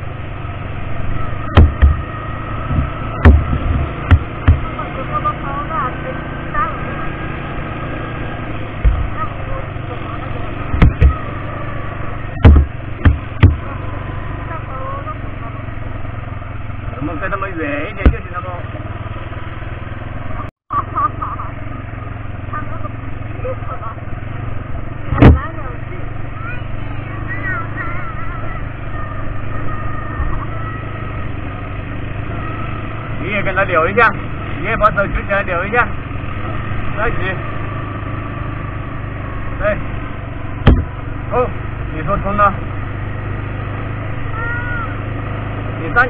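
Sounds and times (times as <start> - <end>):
atv engine running: 0.0 - 46.0
voices talking: 0.8 - 19.3, 20.2 - 46.0
sharp knocks from ride: 2.7 - 4.7, 12.4 - 13.7, 40.6 - 41.0.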